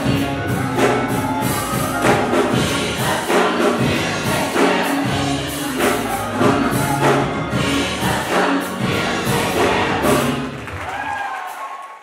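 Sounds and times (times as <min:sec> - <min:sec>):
gospel choir singing: 0:00.0 - 0:10.8
instrumental accompaniment: 0:00.0 - 0:10.8.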